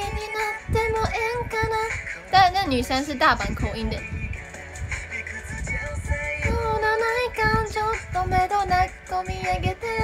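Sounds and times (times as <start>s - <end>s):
woman singing pop song over beat: 0.0s - 10.0s.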